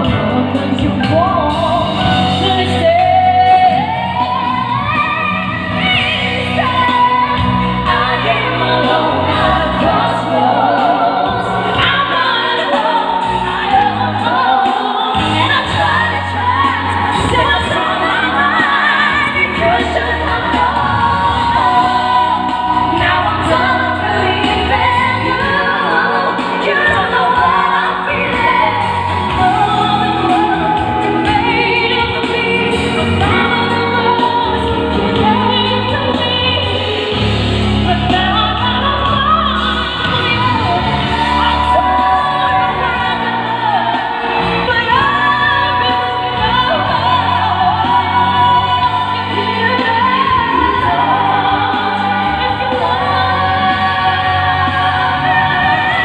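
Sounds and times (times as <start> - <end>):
amplified backing music: 0.0 - 56.0
women singing pop ballad: 0.0 - 56.0.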